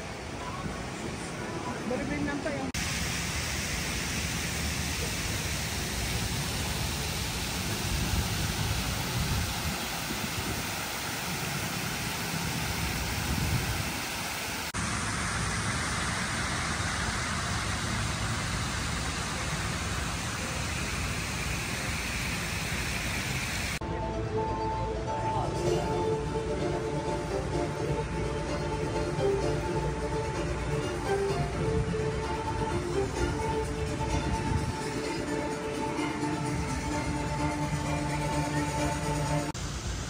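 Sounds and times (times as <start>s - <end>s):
fountain water splashing: 0.0s - 23.8s, 24.9s - 40.0s.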